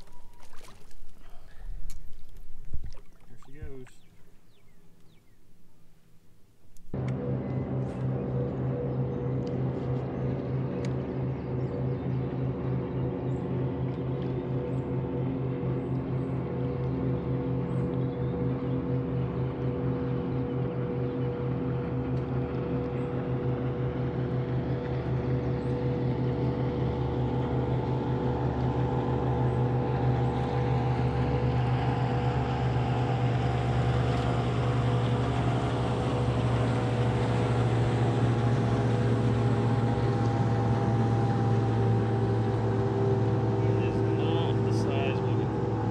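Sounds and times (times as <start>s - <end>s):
boat motor droning: 0.0s - 45.9s.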